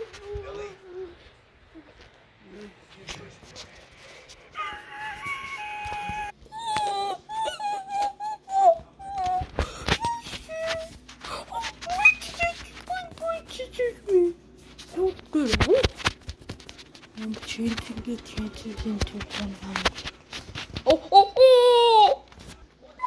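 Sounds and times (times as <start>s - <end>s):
high voice wailing and moaning: 0.0s - 2.8s, 4.5s - 14.4s.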